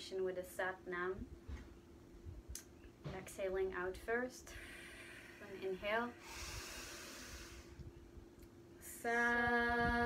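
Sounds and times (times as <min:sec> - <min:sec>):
woman inhaling deeply: 0:04.5 - 0:07.8.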